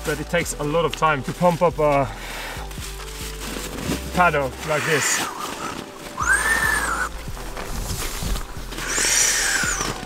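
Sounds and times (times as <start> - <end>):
whistling rush of air from pump bag: 4.6 - 10.0.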